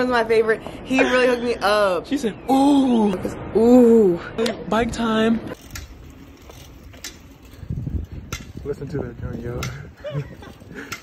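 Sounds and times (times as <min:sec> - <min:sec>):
bicycle tyre rumble on asphalt: 0:05.4 - 0:11.0
wind on microphone: 0:06.8 - 0:11.0.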